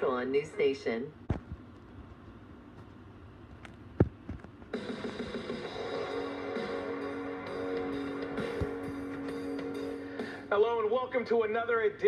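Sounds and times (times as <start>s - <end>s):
sports show theme music: 4.8s - 11.3s.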